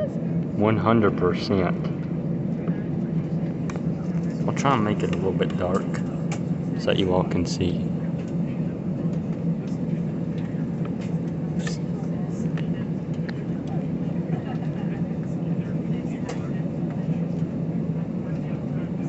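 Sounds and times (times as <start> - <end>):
airliner engines droning in cabin: 0.0 - 19.0.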